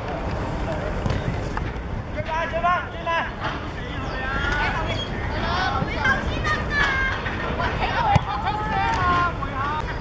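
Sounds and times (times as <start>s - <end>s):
low background noise: 0.0s - 10.0s
young players shouting: 7.8s - 9.5s.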